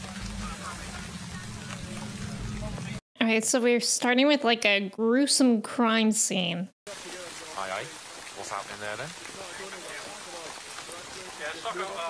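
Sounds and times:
steady rain on street: 0:00.0 - 0:03.0, 0:06.9 - 0:12.0
faint dialogue: 0:00.4 - 0:12.0.

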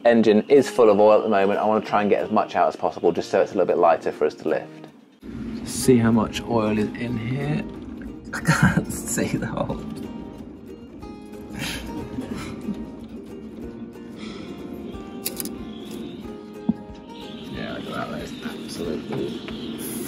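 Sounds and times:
background music with held notes: 0:00.0 - 0:20.0.

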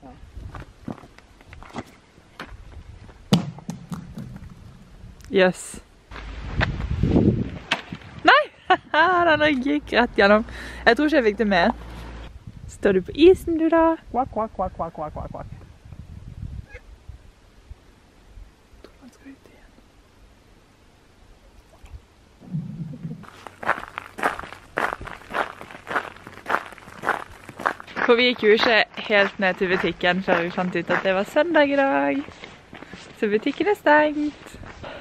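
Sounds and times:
low rumble: 0:22.4 - 0:23.9.

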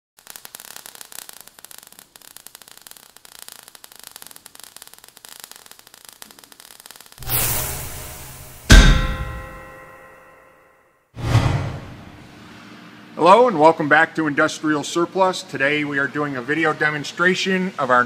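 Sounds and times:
crackle of falling sparks: 0:00.2 - 0:09.9
metallic clang ringing: 0:07.8 - 0:10.7.

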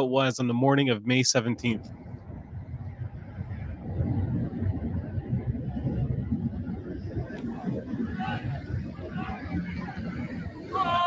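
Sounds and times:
low rumble of street traffic: 0:00.0 - 0:11.0.

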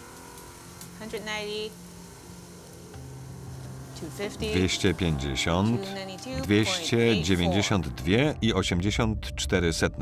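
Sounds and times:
gold flakes trickling into metal pan: 0:00.0 - 0:07.7
low music bed: 0:00.0 - 0:10.0.

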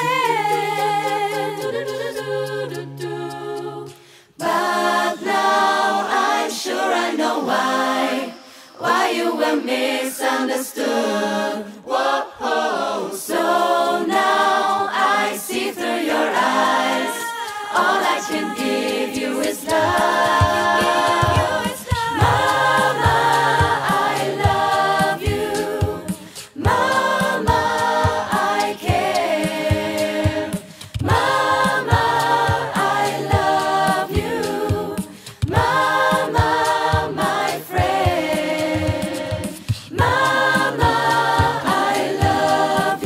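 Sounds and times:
beatboxed percussion hits: 0:00.0 - 0:06.4, 0:14.0 - 0:43.0
a cappella choir singing in harmony: 0:00.0 - 0:43.0.

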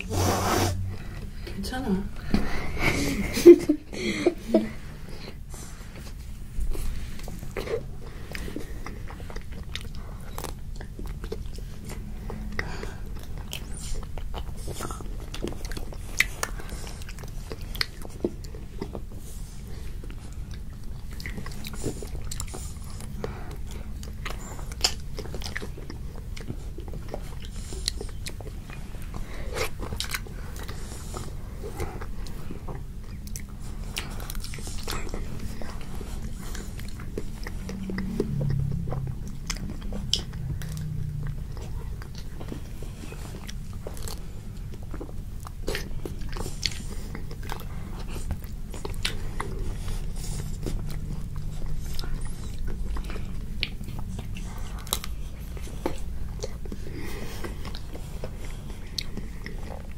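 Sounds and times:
children crunching ice cream bars: 0:04.4 - 0:59.9.

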